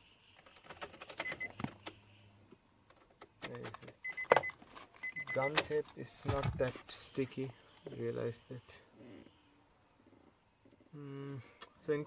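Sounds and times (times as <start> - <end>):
handling clicks and scrapes: 2.9 - 7.0
short electronic beep: 5.0 - 5.6.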